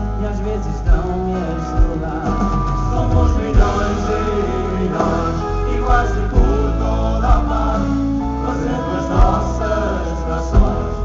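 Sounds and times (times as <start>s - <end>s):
live pop-folk band: 0.0s - 11.0s.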